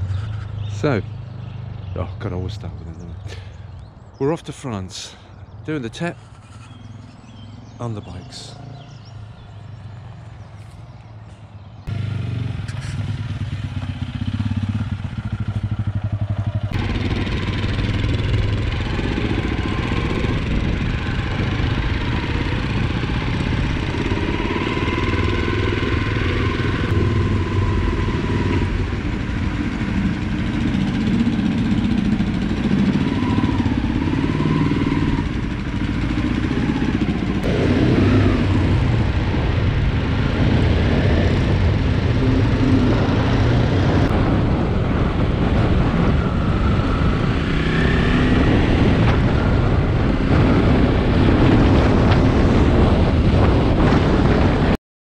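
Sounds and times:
motorcycle engine revving: 0.0s - 2.4s, 6.2s - 10.8s, 11.8s - 54.8s
road and wind noise: 0.0s - 54.8s.

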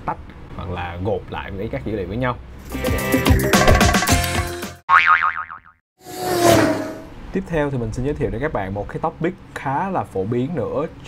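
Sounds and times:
cartoon boing sound effect: 4.9s - 5.8s.

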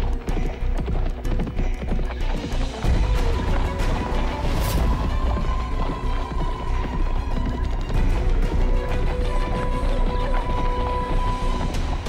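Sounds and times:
dramatic music with heavy bass: 0.0s - 12.0s
horse hoofbeats: 0.0s - 12.0s.

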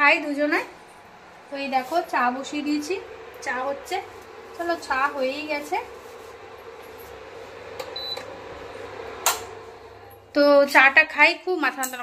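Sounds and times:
electrical hum: 0.0s - 12.0s
appliance switch click: 9.2s - 9.6s.

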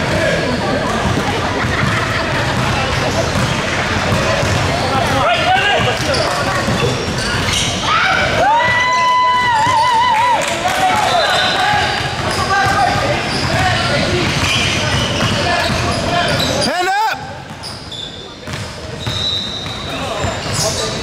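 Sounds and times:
players' voices: 0.0s - 21.0s
sneaker squeaks: 0.1s - 8.4s, 9.4s - 10.1s, 11.0s - 21.0s
basketball bouncing: 0.8s - 7.6s, 11.5s - 16.0s, 18.4s - 20.6s.

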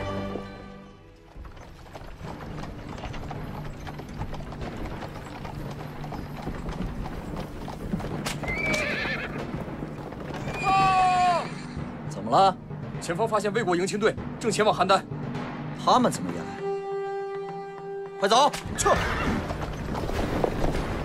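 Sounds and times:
horse hooves clip-clopping on dirt: 0.0s - 11.4s, 16.2s - 21.0s
music: 0.0s - 21.0s
horse whinnying: 5.1s - 11.8s, 18.7s - 20.0s.

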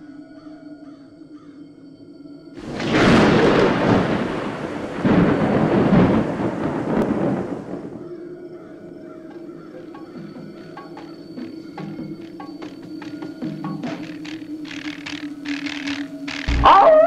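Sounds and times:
thunder crack and rumble: 2.6s - 17.0s
low musical drone: 8.2s - 17.0s.

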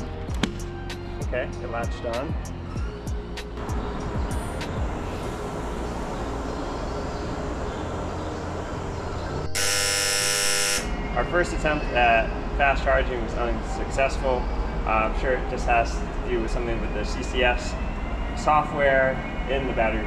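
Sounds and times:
background music: 0.0s - 20.0s
wrong answer buzzer: 9.5s - 10.9s.

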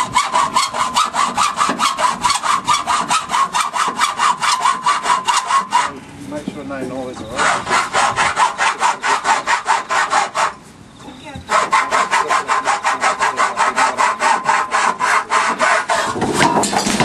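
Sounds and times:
hacksaw cutting metal rail: 0.0s - 6.0s, 7.4s - 10.6s, 11.5s - 17.0s.

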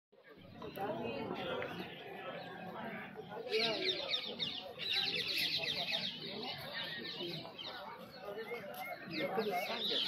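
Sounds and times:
flock of birds chirping: 0.2s - 10.0s.

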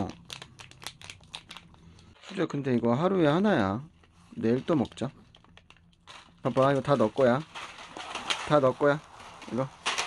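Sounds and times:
plastic pouches crinkling: 0.0s - 2.5s, 4.0s - 10.0s.

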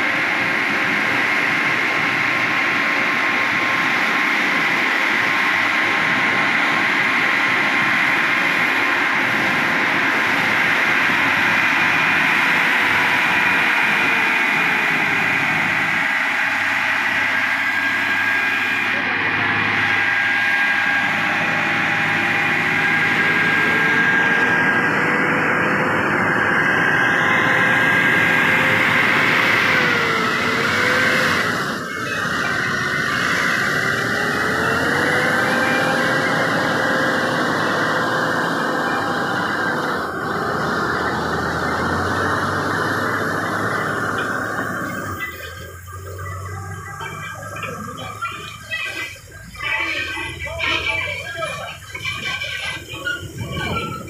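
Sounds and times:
road and tyre noise: 0.0s - 54.0s
truck diesel engine running: 0.0s - 54.0s.

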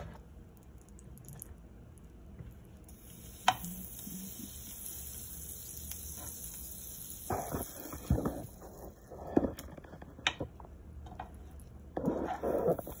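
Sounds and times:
sandwich sizzling in a pan: 2.9s - 9.3s, 12.4s - 13.0s
utensil scraping in a pan: 5.6s - 10.2s, 12.0s - 13.0s.

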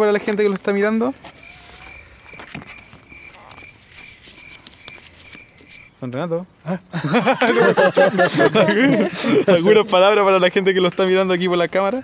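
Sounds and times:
faint clicks and rustles: 0.2s - 6.2s
night animal calling: 1.2s - 6.0s.

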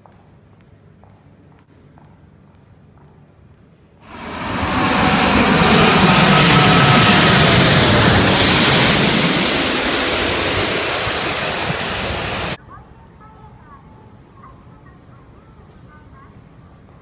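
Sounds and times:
jet airliner passing overhead: 4.1s - 12.6s.

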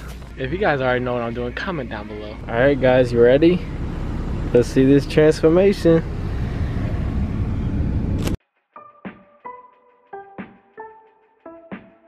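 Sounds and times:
car cabin rumble and hiss: 0.0s - 8.4s.

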